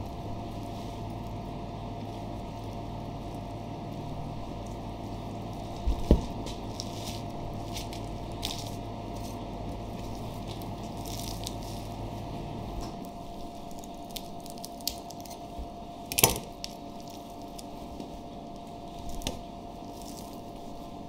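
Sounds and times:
kitchen hum: 0.0 - 21.0.

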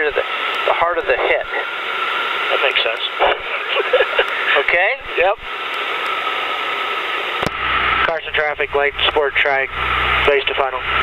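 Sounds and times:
faint steady whine: 0.0 - 11.0.

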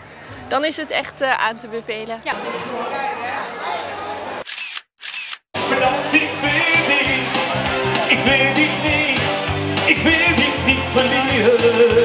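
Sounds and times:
background chatter: 0.0 - 4.6
camera shutter clicks: 4.5 - 5.4.

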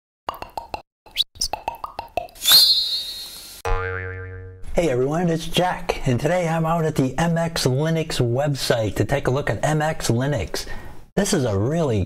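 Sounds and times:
rising chirps: 2.4 - 3.6
plucky synthesized notes: 3.7 - 4.6.

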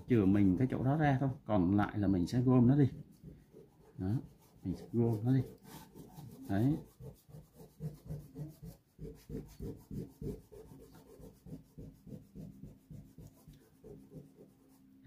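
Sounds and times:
eraser rubbing on paper: 0.0 - 1.3, 2.0 - 15.0.

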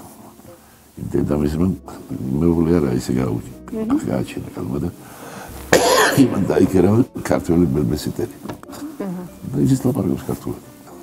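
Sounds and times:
person coughing: 5.8 - 6.4.

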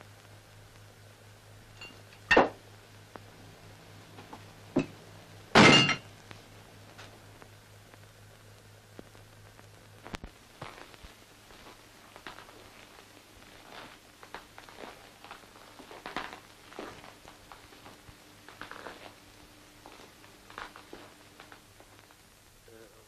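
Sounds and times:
steady low hum: 0.0 - 23.0
footsteps on floor: 10.1 - 19.2, 19.8 - 22.1.

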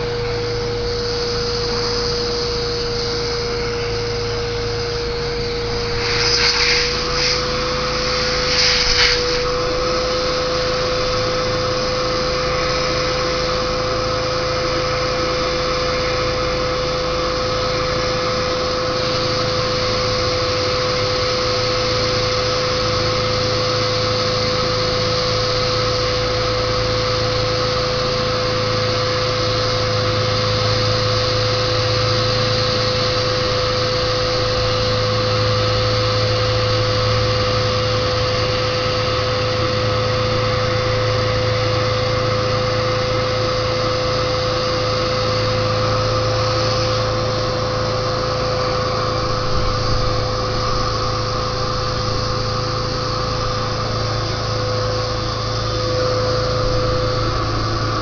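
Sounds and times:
electric air pump whining: 0.0 - 58.0.

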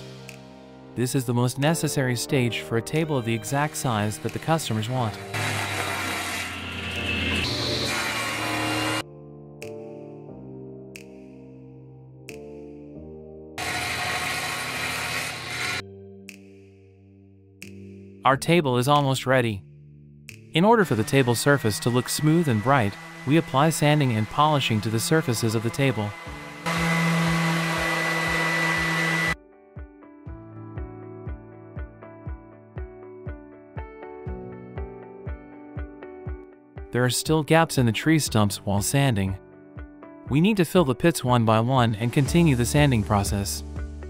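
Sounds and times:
background music with steady beat: 0.0 - 13.6, 15.4 - 44.0
table saw cutting wood: 3.4 - 9.0, 13.6 - 15.8, 20.7 - 29.4, 42.0 - 43.4
orbital sander whirring: 4.3 - 9.0, 13.6 - 15.8, 20.9 - 29.4.

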